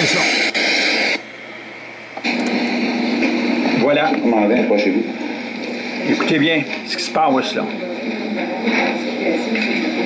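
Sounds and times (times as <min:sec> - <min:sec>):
loud hiss from loudspeakers: 0:00.0 - 0:10.0
low steady hum: 0:00.2 - 0:10.0.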